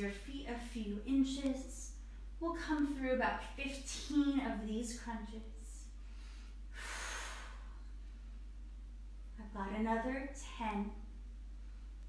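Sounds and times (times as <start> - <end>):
steady low hum: 0.0 - 12.0
woman breathing out: 6.0 - 7.9.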